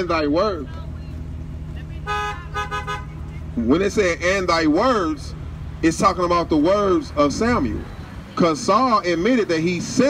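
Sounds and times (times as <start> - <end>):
low traffic rumble: 0.0 - 10.0
car horn honking: 1.8 - 3.6.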